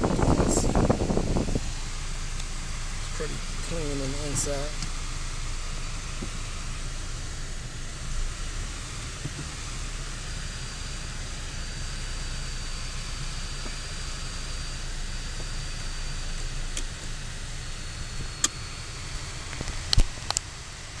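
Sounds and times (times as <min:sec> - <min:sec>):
faint high whine: 0:00.0 - 0:21.0
road and engine rumble: 0:00.0 - 0:21.0.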